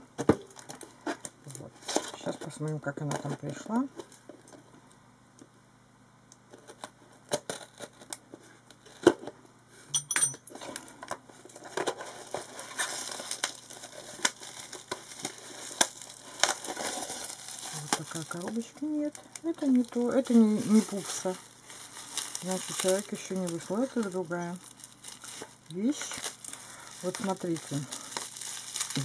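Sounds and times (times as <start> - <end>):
bubble wrap crinkling: 0.0 - 4.7, 6.5 - 9.4, 10.5 - 29.0.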